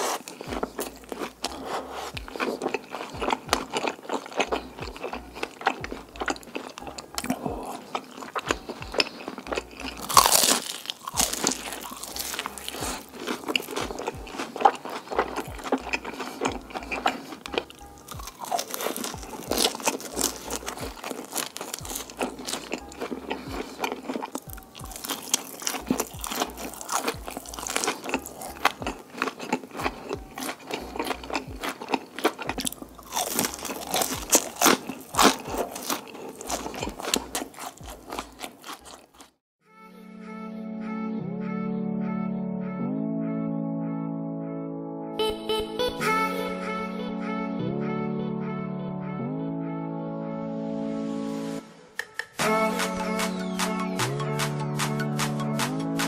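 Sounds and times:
crunching fried fish bites: 0:00.0 - 0:39.4.

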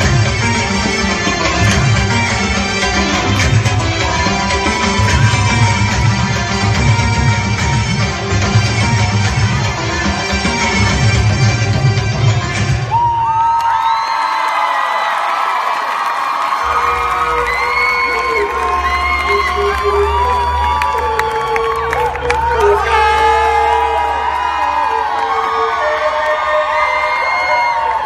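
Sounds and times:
dance music: 0:00.0 - 0:13.5, 0:16.6 - 0:28.0
crowd cheering and whooping: 0:03.4 - 0:07.0, 0:12.8 - 0:28.0.

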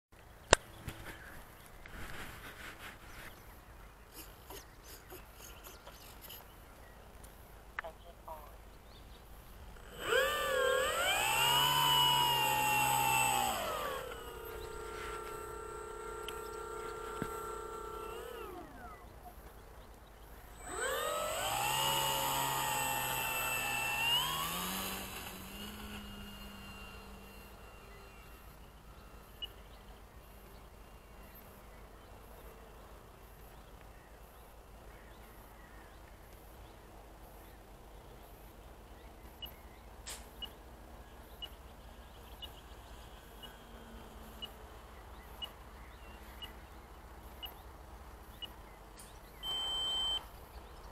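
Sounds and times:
model plane motor whine: 0:09.6 - 0:19.4, 0:20.4 - 0:32.9, 0:41.5 - 0:45.6, 0:49.4 - 0:50.4.

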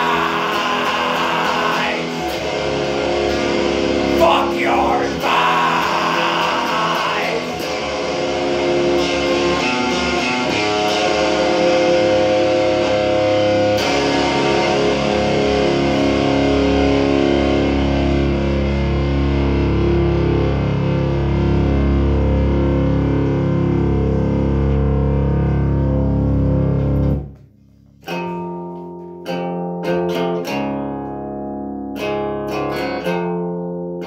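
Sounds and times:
distorted electric guitar chords: 0:00.0 - 0:34.0.

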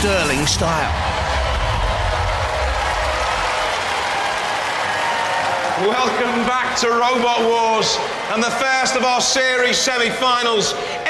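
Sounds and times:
audience shouting and cheering: 0:00.0 - 0:11.0
audience clapping: 0:00.5 - 0:10.6.

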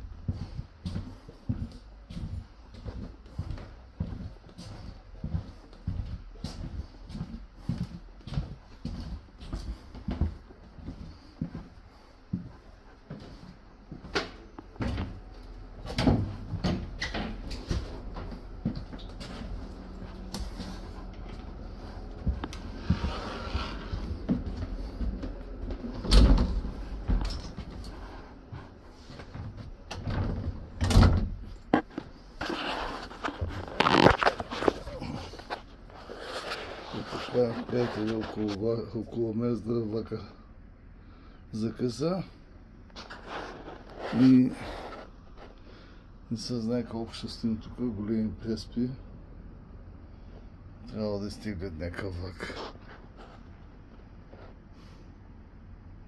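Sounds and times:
footsteps in train corridor: 0:00.0 - 0:30.8, 0:31.4 - 0:40.2, 0:42.9 - 0:45.6.

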